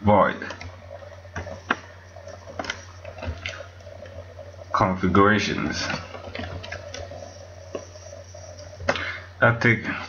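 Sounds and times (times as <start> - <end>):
low hum: 0.5 - 9.4.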